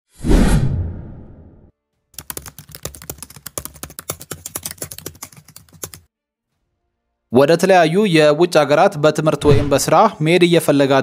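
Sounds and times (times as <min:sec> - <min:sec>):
loud whooshing hit: 0:00.2 - 0:01.6
keyboard typing clicks: 0:02.2 - 0:06.1.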